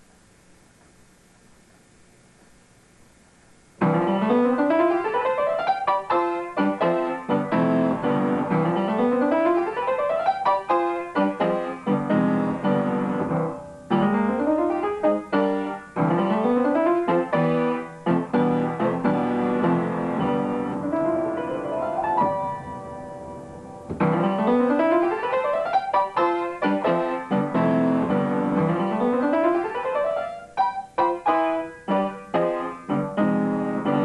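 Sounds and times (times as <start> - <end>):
upright piano runs: 3.7 - 34.0.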